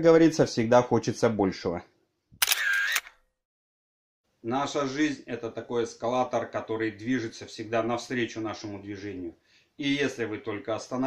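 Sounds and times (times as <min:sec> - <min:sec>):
narration voice: 0:04.4 - 0:11.0.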